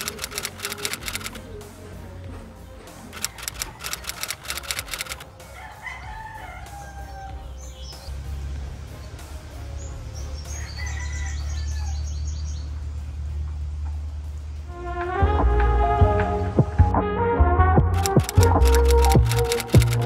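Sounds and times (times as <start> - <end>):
quick high chirps: 0.0 - 1.4, 3.1 - 5.2
music with deep bass: 0.0 - 20.0
rooster crowing: 5.5 - 7.6, 10.5 - 12.2.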